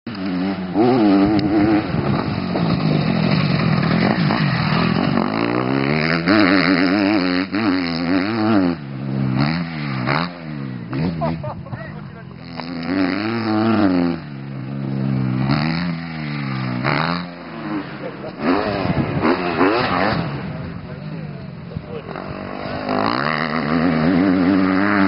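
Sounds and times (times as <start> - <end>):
motocross bike engine revving: 0.1 - 25.0.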